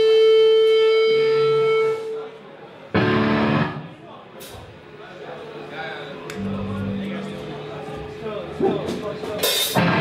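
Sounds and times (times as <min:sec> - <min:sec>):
electric guitar note ringing: 0:06.4 - 0:07.8.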